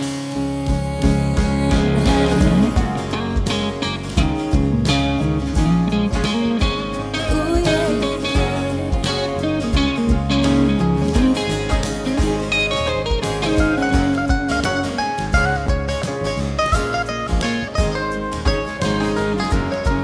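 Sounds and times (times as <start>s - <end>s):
country band playing: 0.0s - 20.0s
electric guitar picking: 0.0s - 20.0s.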